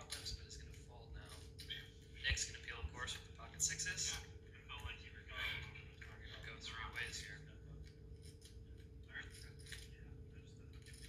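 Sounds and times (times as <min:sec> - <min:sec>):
low hum from tv: 0:00.0 - 0:11.0.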